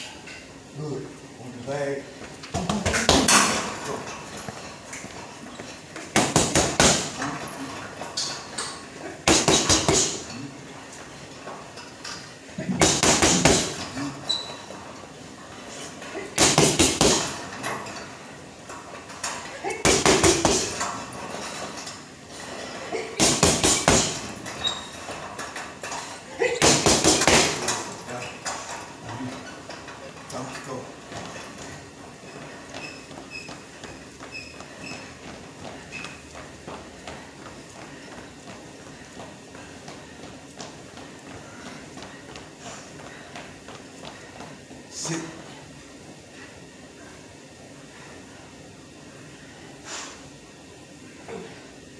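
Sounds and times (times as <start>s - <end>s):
boxing gloves punching heavy bag: 2.6s - 4.6s, 6.0s - 8.0s, 9.1s - 10.4s, 12.6s - 14.3s, 16.2s - 17.8s, 19.7s - 21.3s, 23.1s - 25.3s, 26.4s - 28.0s.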